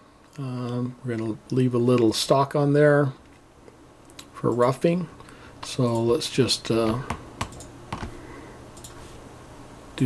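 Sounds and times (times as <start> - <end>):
low steady hum: 0.0 - 10.0
computer mouse clicks: 7.4 - 8.1, 8.8 - 9.0.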